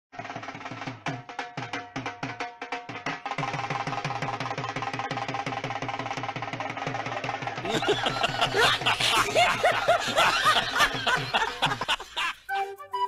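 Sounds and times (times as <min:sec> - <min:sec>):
dhol drums beating: 0:00.2 - 0:12.0.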